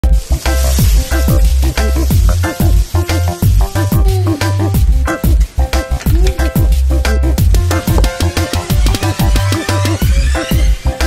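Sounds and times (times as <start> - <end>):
music with deep bass beat: 0.0 - 11.0
onions sizzling in a pan: 0.0 - 11.0.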